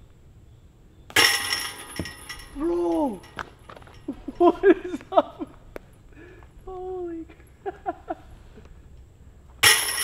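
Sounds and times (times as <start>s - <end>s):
disc hitting metal chains: 1.1s - 4.6s, 9.6s - 10.0s
chains jingling: 1.2s - 4.5s.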